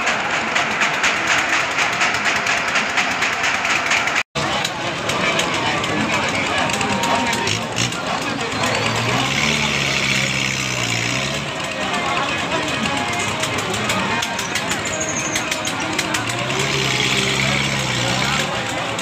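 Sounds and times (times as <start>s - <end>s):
crowd noise: 0.0s - 19.0s
ride machinery mechanical hum: 0.0s - 19.0s.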